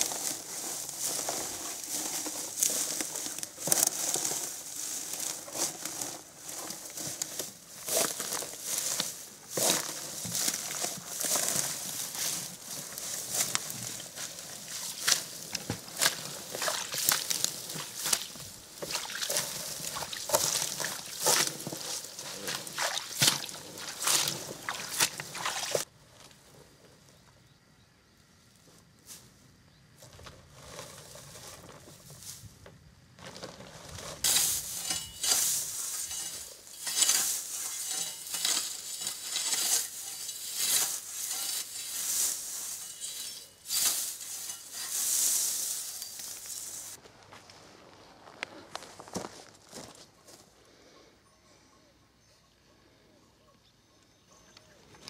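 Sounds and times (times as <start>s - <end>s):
boot stamping on hay: 0.0s - 25.9s, 33.2s - 47.0s
dry hay crackling and rustling: 0.0s - 27.2s, 28.4s - 50.4s.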